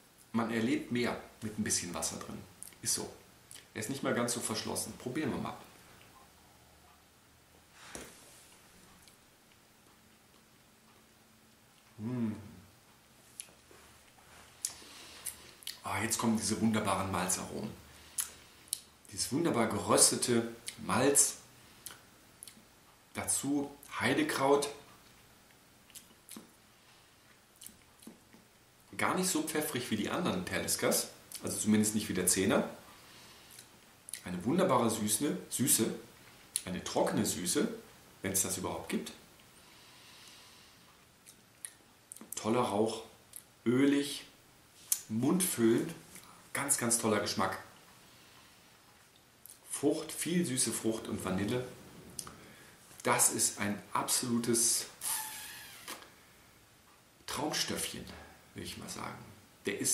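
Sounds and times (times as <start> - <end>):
person breathing faintly: 14.3 - 15.6, 32.9 - 33.7, 39.6 - 41.0, 47.9 - 48.8
lip smacks and tongue clicks: 25.9 - 26.6, 27.6 - 28.4.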